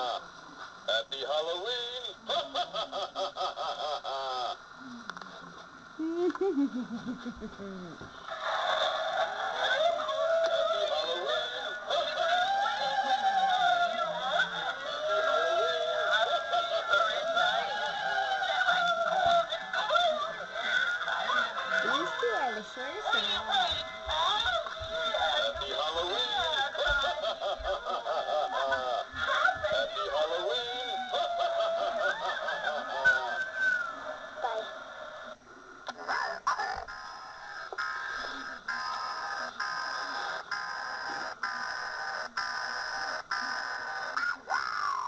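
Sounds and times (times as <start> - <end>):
electronic ghostly moaning: 7.8 - 22.3
thin high whine: 31.9 - 45.0.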